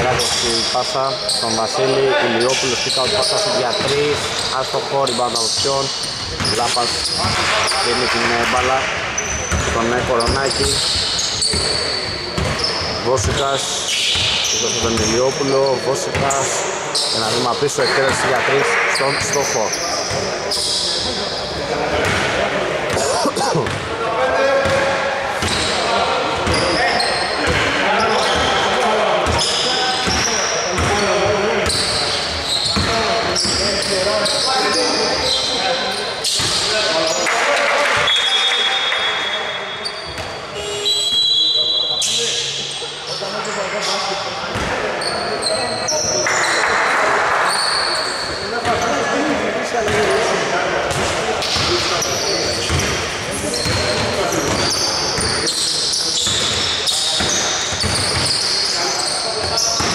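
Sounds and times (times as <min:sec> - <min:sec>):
sneakers squeaking: 0:00.0 - 0:24.0, 0:24.6 - 0:59.9.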